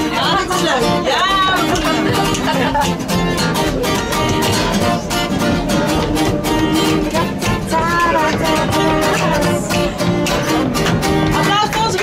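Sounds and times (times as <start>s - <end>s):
acoustic guitar strumming: 0.0s - 12.0s
hand claps: 1.5s - 3.0s, 5.9s - 12.0s
wordless singing melody: 5.8s - 10.7s.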